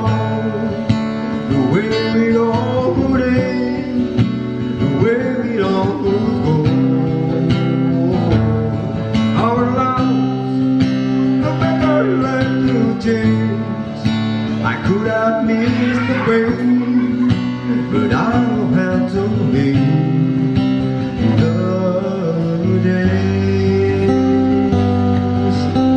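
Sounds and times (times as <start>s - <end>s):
acoustic guitar country ballad: 0.0s - 25.9s
man singing: 0.0s - 25.9s.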